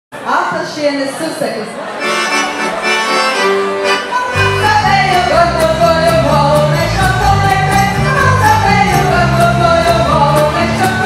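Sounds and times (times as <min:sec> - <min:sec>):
accordion playing folk dance tune: 0:01.7 - 0:11.0
low bass notes: 0:04.3 - 0:11.0.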